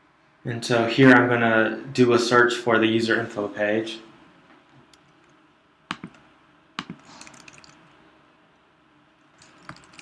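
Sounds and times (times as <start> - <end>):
computer mouse click: 6.8 - 7.8.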